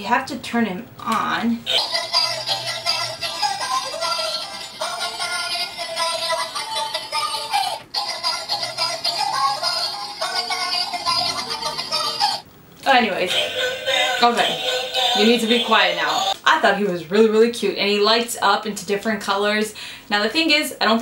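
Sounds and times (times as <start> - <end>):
toy playing electronic tune with singing: 1.7 - 12.4, 13.2 - 16.4.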